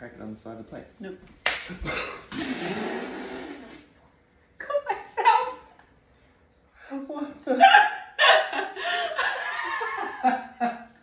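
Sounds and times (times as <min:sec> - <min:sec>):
woman laughing hard: 0:07.5 - 0:10.9.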